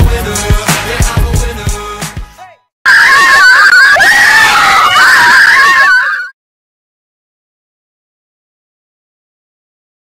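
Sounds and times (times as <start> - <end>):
background music: 0.0 - 2.6
high-pitched screaming: 2.9 - 6.3.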